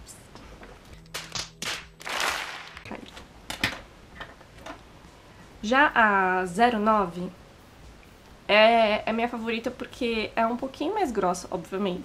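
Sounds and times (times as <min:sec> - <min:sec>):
sharp cracks: 0:01.0 - 0:02.9
crowd cheering and clapping: 0:01.6 - 0:02.9
steady low hum: 0:02.8 - 0:12.0.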